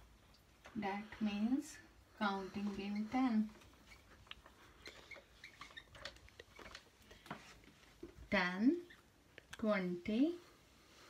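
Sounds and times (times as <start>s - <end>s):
marker squeaking on whiteboard: 2.5s - 6.9s.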